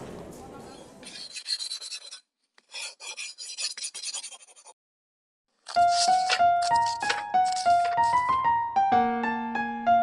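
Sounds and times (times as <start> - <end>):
pencil scratching on paper: 1.0 - 4.8, 5.7 - 8.4.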